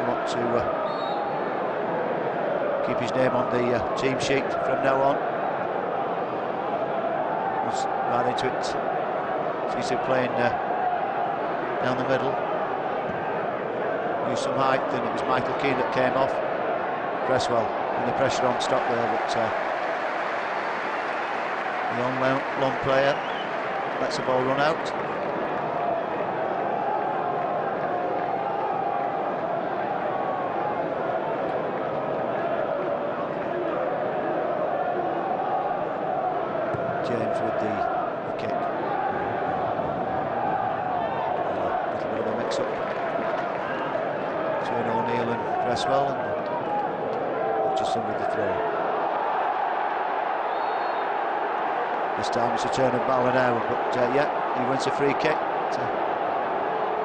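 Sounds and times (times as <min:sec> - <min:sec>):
crowd voices: 0:00.0 - 0:21.0, 0:21.7 - 0:57.0
crowd chanting: 0:00.0 - 0:57.0.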